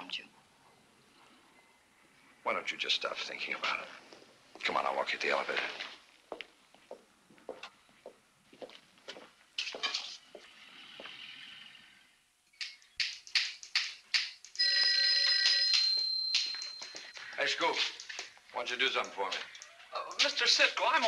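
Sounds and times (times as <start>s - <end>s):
footsteps on hard floor: 5.6s - 11.1s, 15.2s - 18.4s
old telephone bell ringing: 14.6s - 17.7s.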